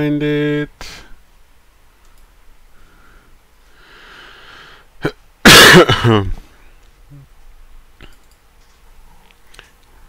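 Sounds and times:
man coughing harshly: 0:05.0 - 0:06.4.

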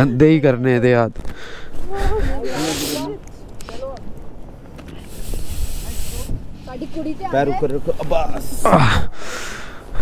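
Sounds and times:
steady hiss: 0:05.0 - 0:06.7.

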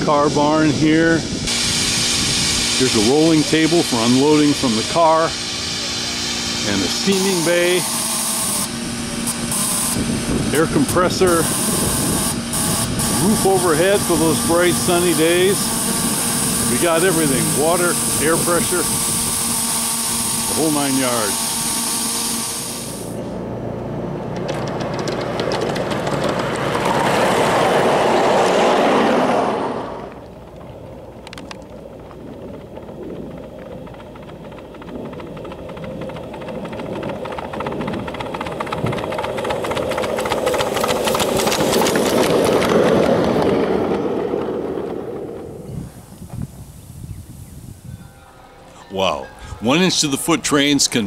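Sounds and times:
miniature train wheels clicking on rails: 0:24.4 - 0:27.7, 0:31.2 - 0:45.3.

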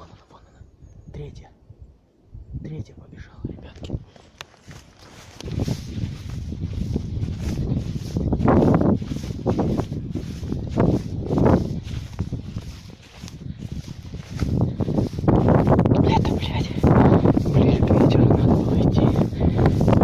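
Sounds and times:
wind buffeting microphone: 0:00.0 - 0:20.0
dry grass rustling: 0:03.8 - 0:20.0
footsteps: 0:04.0 - 0:20.0.

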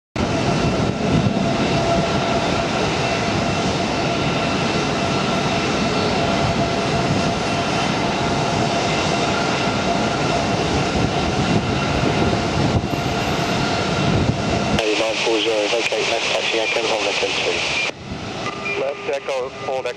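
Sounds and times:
jet engines rumbling and whining: 0:00.2 - 0:19.9.

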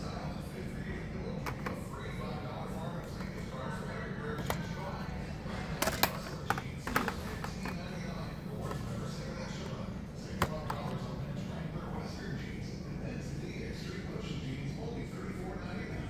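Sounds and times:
faint voices: 0:00.0 - 0:16.0
steady store hum: 0:00.0 - 0:16.0.

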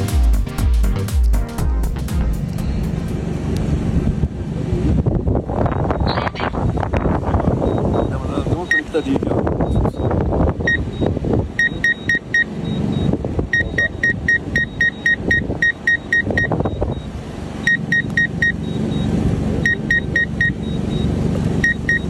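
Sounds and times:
steady low rumble: 0:00.0 - 0:22.0
short high electronic beeps: 0:07.6 - 0:10.1, 0:10.7 - 0:17.1, 0:17.7 - 0:22.0.

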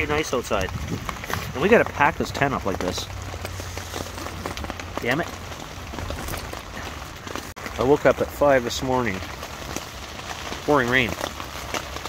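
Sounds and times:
rain on tent fabric: 0:00.0 - 0:12.0.

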